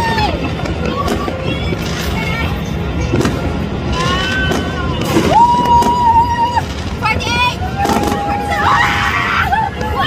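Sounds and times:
fireworks rumble and pops: 0:00.0 - 0:10.0.

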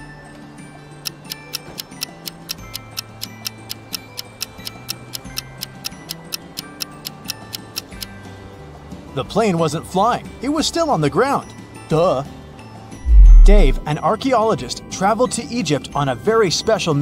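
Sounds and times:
soft background music: 0:00.0 - 0:17.0
countdown timer ticking: 0:01.0 - 0:08.1, 0:13.0 - 0:13.8.

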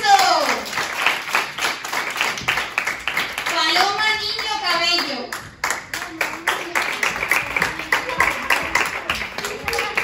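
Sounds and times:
small hands clapping: 0:05.3 - 0:10.0.

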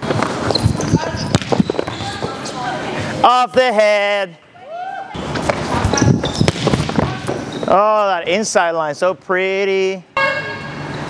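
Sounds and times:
footfalls on gym floor: 0:00.0 - 0:02.4, 0:05.3 - 0:07.8
volleyball contacts: 0:00.0 - 0:02.5, 0:05.2 - 0:07.8
sneaker squeaks: 0:00.0 - 0:02.8, 0:05.2 - 0:08.0, 0:10.2 - 0:11.0.

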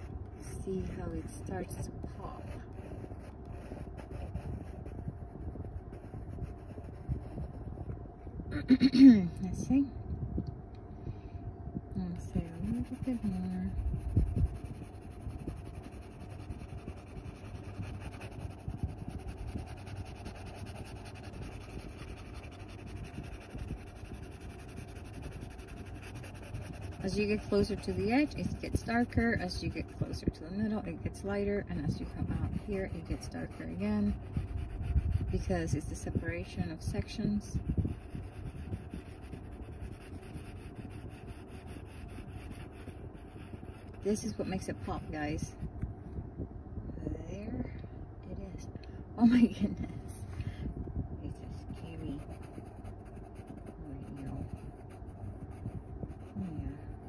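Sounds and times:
pencil scratching on paper: 0:00.0 - 0:07.6, 0:12.4 - 0:45.5, 0:51.4 - 0:56.9.

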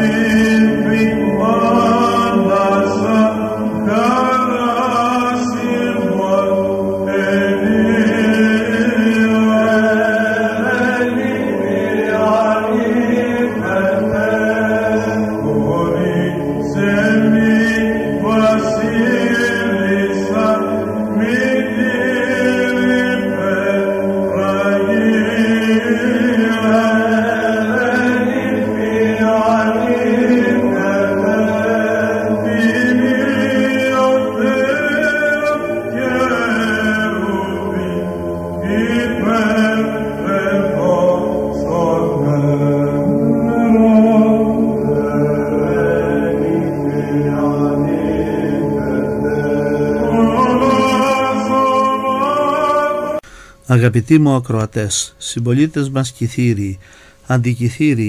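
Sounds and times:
voices chanting slow melody: 0:00.0 - 0:53.8.

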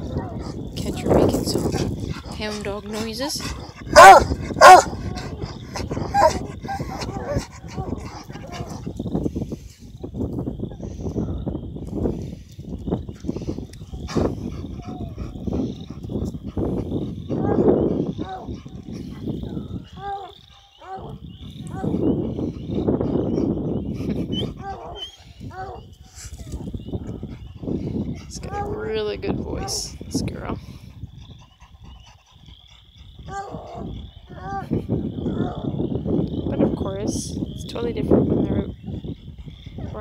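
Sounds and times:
dog baying: 0:03.4 - 0:08.9, 0:24.3 - 0:25.8, 0:31.4 - 0:34.7.

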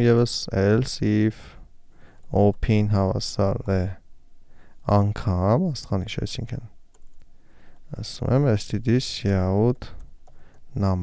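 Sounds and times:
man's voice: 0:02.3 - 0:04.0.

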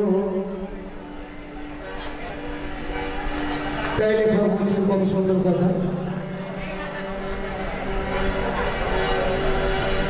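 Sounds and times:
harmonium drone: 0:00.0 - 0:10.0.

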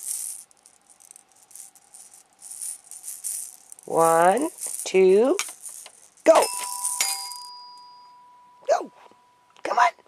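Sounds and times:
toy xylophone note ringing: 0:06.3 - 0:08.7.

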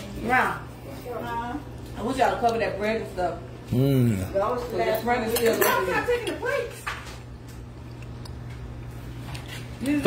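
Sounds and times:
people talking: 0:00.0 - 0:06.8.

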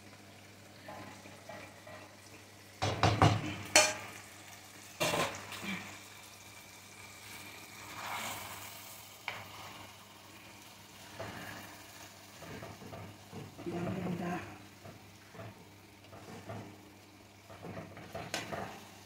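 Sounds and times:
chicken sizzling in a pan: 0:00.0 - 0:19.0
wooden spatula scraping: 0:07.8 - 0:09.9, 0:15.2 - 0:16.8.

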